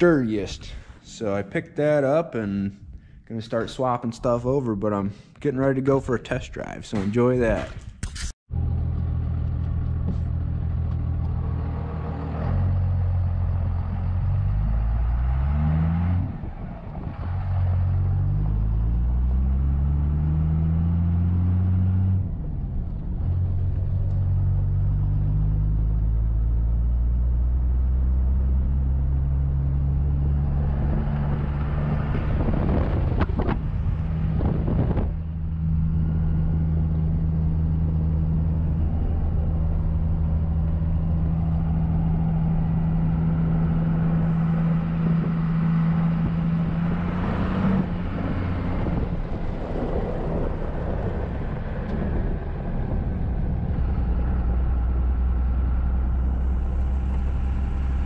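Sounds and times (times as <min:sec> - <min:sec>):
diesel truck engine revving: 0:08.5 - 0:58.0.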